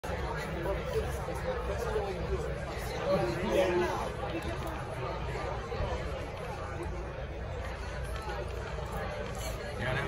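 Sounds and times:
murmur of busy hall: 0.0s - 10.0s
people talking: 0.0s - 10.0s.

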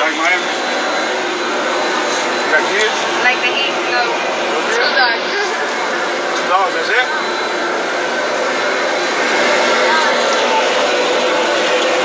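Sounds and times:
loud rushing noise: 0.0s - 12.0s.

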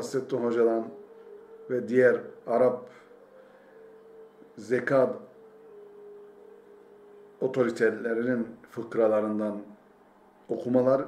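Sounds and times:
faint steady hum: 0.0s - 11.0s
low background hiss: 0.0s - 11.0s.

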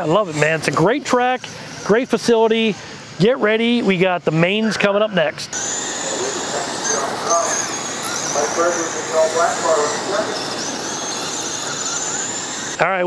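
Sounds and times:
electric motor whine: 0.0s - 4.7s, 5.4s - 13.0s
faint voices: 0.0s - 13.0s
steady hiss: 5.6s - 12.8s.

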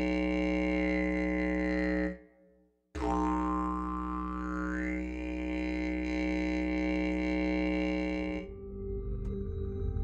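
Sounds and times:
didgeridoo drone: 0.0s - 2.2s, 3.0s - 10.0s.

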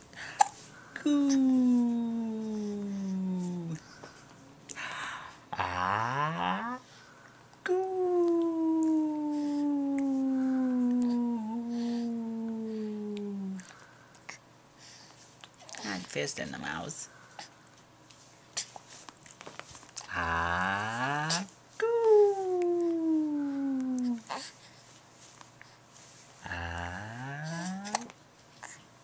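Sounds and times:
baby cooing: 0.4s - 3.8s, 7.7s - 13.6s, 20.0s - 24.5s, 26.8s - 28.1s.

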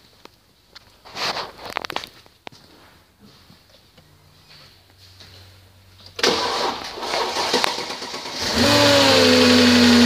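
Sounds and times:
car engine cranking and starting: 6.2s - 10.0s.

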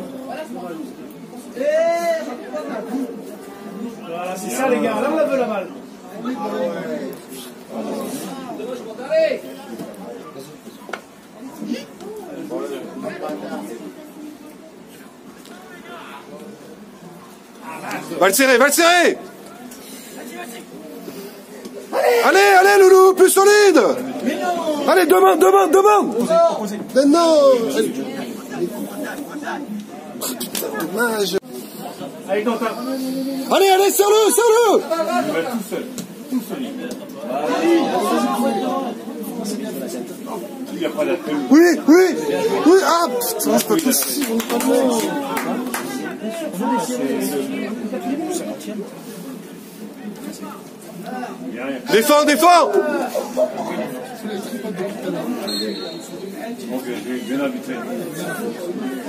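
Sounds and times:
crowd shouting and chattering: 0.0s - 59.0s.

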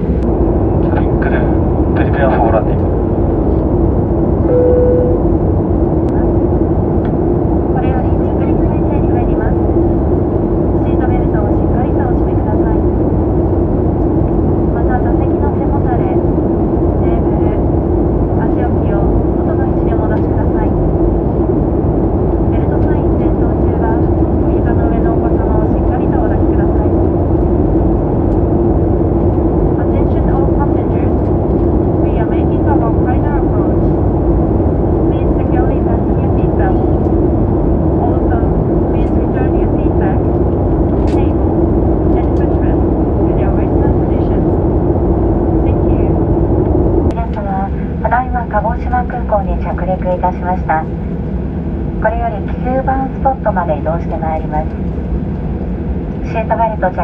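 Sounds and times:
jet engine and airflow rush: 0.0s - 57.0s.

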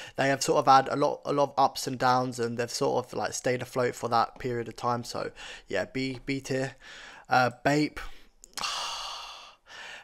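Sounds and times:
man sighing: 8.6s - 10.0s.

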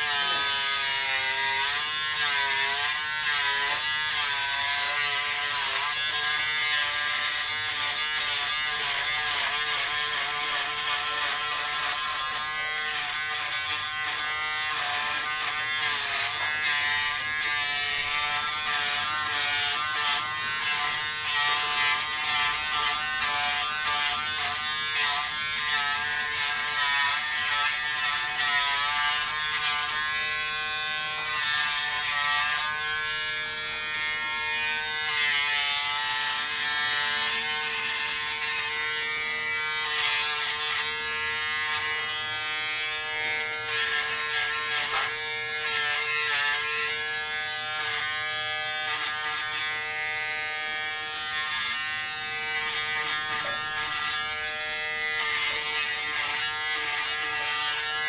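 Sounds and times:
electric shaver buzzing: 0.0s - 58.0s.

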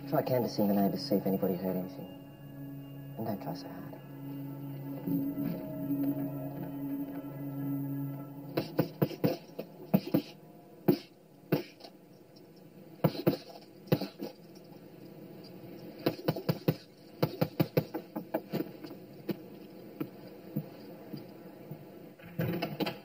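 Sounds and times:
low sustained drone: 0.0s - 13.0s.

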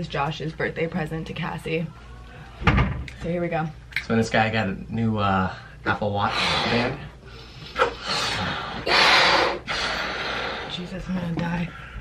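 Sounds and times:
people inflating balloons by mouth: 6.2s - 10.8s.

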